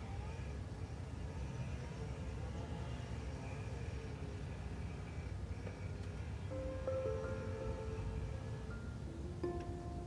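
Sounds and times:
low steady rumble: 0.0 - 10.0
soft music of long held notes: 0.0 - 10.0.

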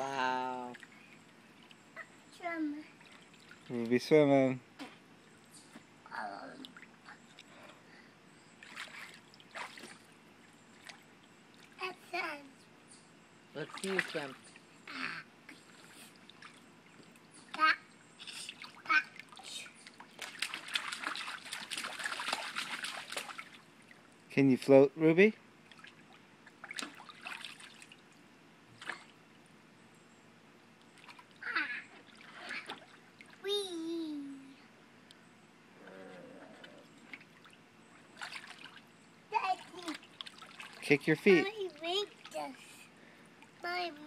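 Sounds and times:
water splashing in kiddie pool: 0.0 - 5.3, 6.5 - 7.8, 8.5 - 12.4, 13.5 - 29.4, 30.8 - 33.6, 36.0 - 44.0
child vocal sounds: 6.1 - 6.7, 14.9 - 15.3.

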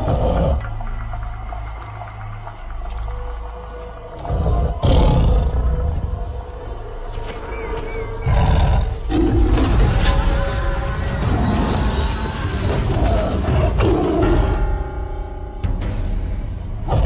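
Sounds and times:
dramatic music: 0.0 - 17.0
big cat roar: 4.2 - 6.2, 8.2 - 10.1.

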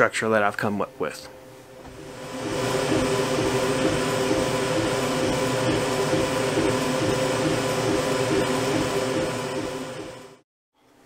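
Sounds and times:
steady machine whir: 1.6 - 10.4.

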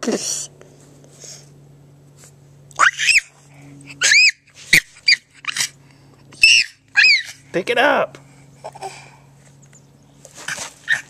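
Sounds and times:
dog whining: 4.0 - 5.7, 6.4 - 7.4.

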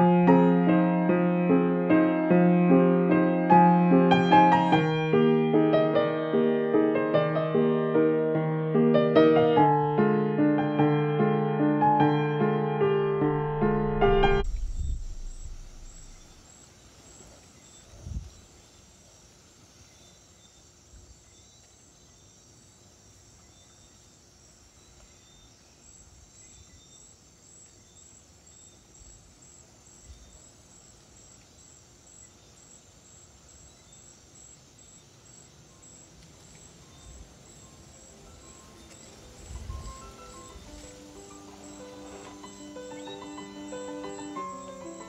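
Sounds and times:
piano music: 0.0 - 16.4, 38.2 - 45.0
low thump: 13.2 - 16.4
thin high-pitched hum: 13.3 - 16.4.

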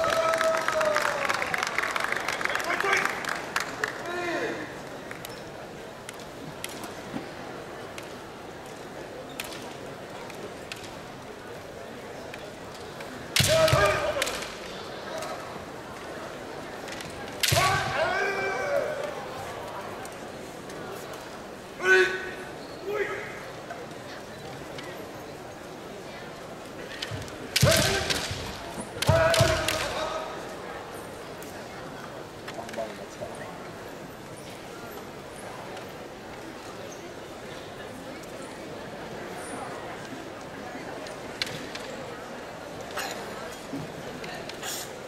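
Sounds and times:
murmur of voices: 0.0 - 45.0
bamboo swords cracking together: 13.3 - 14.6, 26.9 - 30.0.

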